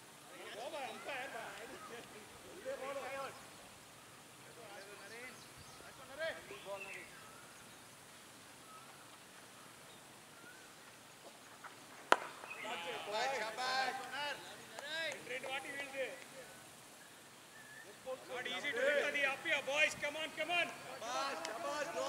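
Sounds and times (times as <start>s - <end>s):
distant fielders calling out: 0.0s - 11.0s, 12.0s - 22.0s
cricket bat hitting ball: 12.1s - 12.5s.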